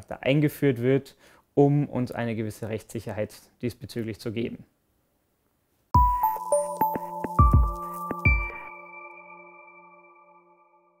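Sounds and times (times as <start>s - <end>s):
electronic jingle chord ringing: 6.0s - 11.0s.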